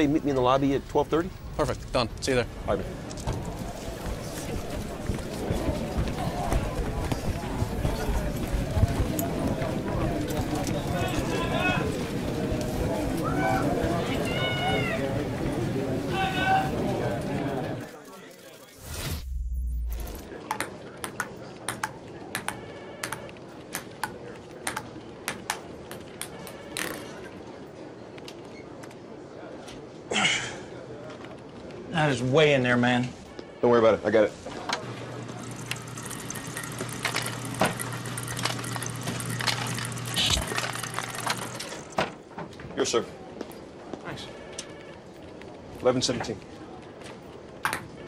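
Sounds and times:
ping-pong balls clicking and rattling: 20.4 - 27.0, 35.3 - 42.0
blower humming: 34.8 - 42.0.

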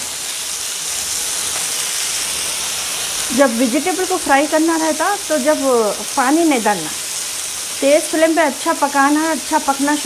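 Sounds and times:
vegetables sizzling in a frying pan: 0.0 - 10.0.

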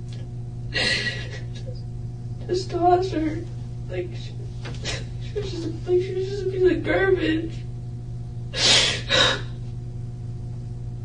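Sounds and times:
woman crying: 0.7 - 1.8, 4.2 - 7.5, 8.6 - 9.6.

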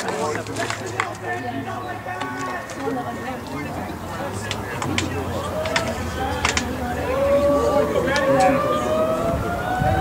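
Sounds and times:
distant voices calling out: 0.0 - 10.0.

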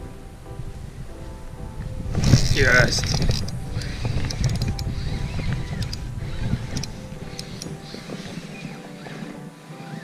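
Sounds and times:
wind rumble: 0.0 - 10.0
microphone handling noise: 1.8 - 9.6.

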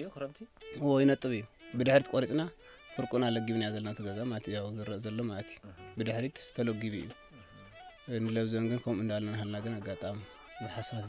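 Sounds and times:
background music: 0.0 - 11.0
person speaking: 0.0 - 11.0.

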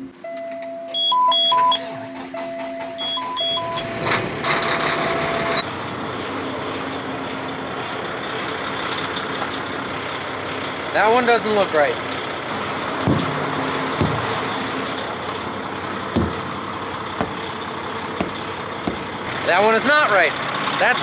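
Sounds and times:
diesel engine starting and idling: 1.2 - 11.0, 12.0 - 21.0.

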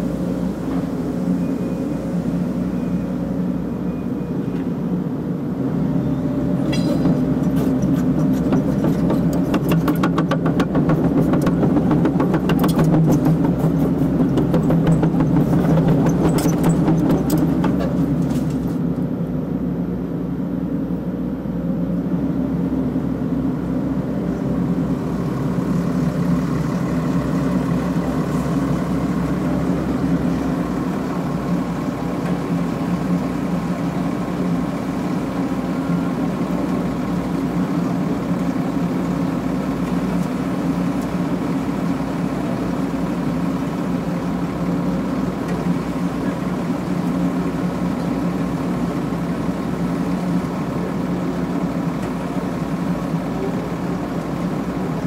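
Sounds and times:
diesel engine running: 0.0 - 55.0.

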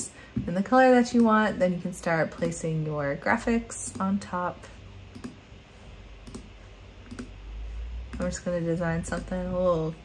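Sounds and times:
faint room noise: 0.0 - 10.0
computer mouse clicks: 5.1 - 5.4, 6.2 - 7.4.

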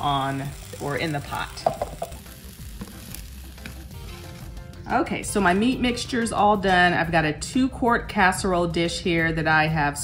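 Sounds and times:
meat and beans sizzling in skillet: 0.0 - 6.4.

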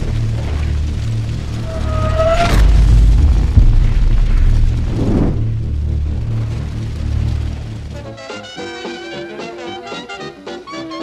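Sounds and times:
low rumbling drone: 0.0 - 8.2
whooshing hit: 1.6 - 7.8.

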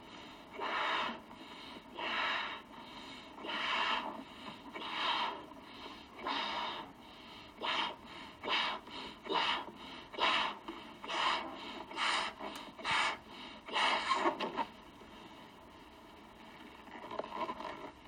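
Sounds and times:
breath blowing up balloon: 7.6 - 14.4.

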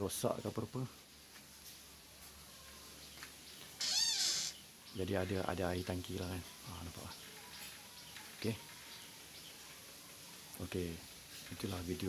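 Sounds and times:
short animal cry: 3.8 - 4.6.

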